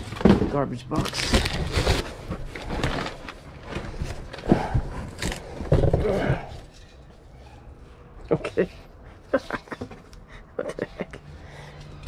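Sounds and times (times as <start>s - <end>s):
newspaper rustling and crinkling: 0.9s - 4.4s.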